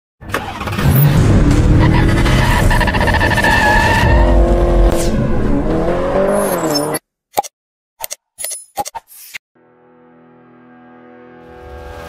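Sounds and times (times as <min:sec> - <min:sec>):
car engine revving: 0:00.4 - 0:06.9
tyre squeal: 0:01.8 - 0:04.5.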